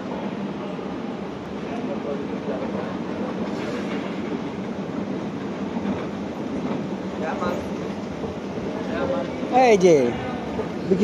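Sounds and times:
faint voices: 0.0s - 11.0s
escalator rumbling and rattling: 1.2s - 11.0s.

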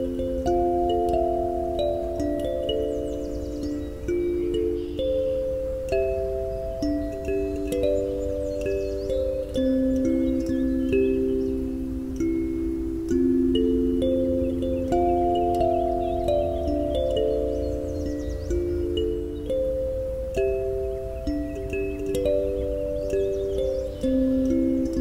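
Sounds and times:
kalimba melody: 0.0s - 25.0s.

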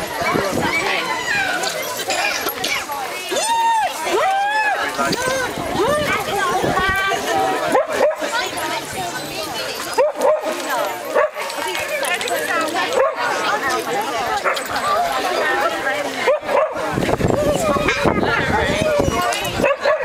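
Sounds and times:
people chattering: 0.0s - 20.0s
dogs barking and yipping: 6.9s - 8.5s, 9.8s - 13.6s, 14.3s - 17.0s, 17.6s - 20.0s.

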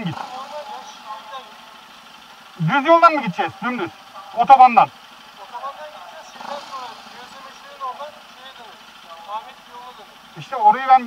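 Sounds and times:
faint muffled voices: 2.6s - 10.2s.

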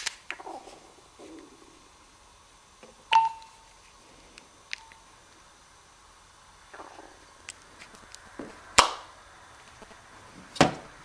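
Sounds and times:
mobile phone beeps: 3.1s - 3.7s.

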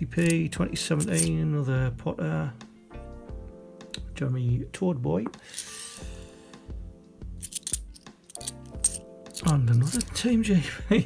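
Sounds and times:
coins clicking together: 0.2s - 1.3s, 5.5s - 6.2s, 7.4s - 10.1s.

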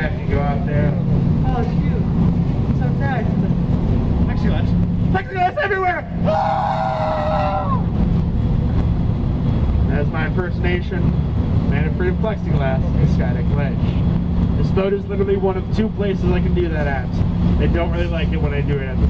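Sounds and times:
speedboat engine droning: 0.0s - 19.0s
long held shout: 6.2s - 7.9s
man speaking over microphone: 9.8s - 19.0s.

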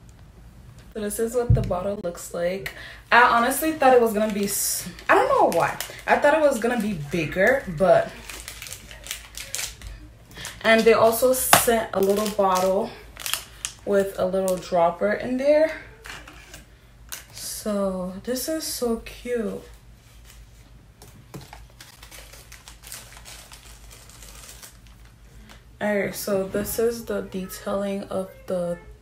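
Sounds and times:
cord rustling: 19.7s - 25.6s.

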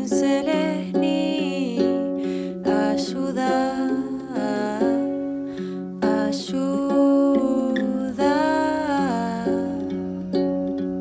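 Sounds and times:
mellow plucked string music: 0.0s - 11.0s
sliding sustained melody notes: 0.0s - 11.0s.

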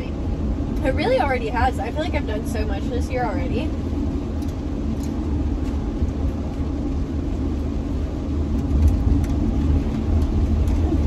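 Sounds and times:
van engine and road rumble: 0.0s - 11.0s.

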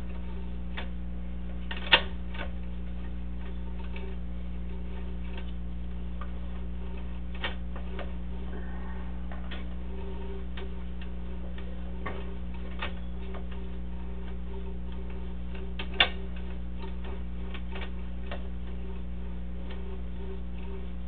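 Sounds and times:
steady low hum: 0.0s - 21.0s
irregular ticks and clicks: 0.1s - 8.4s, 9.3s - 21.0s.

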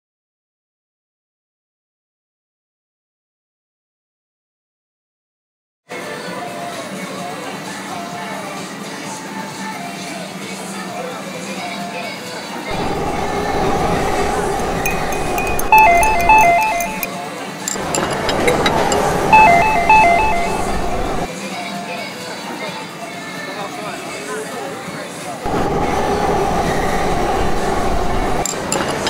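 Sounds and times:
background music: 5.9s - 25.5s
crowd and traffic noise: 5.9s - 29.0s
city noise: 12.6s - 21.3s, 25.4s - 29.0s
electronic chime beeps: 14.9s - 17.1s, 18.6s - 21.3s.

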